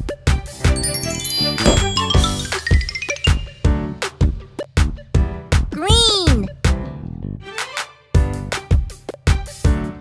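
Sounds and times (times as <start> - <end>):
children's music with beat: 0.0 - 5.2
tinkling chimes climbing: 0.7 - 3.7.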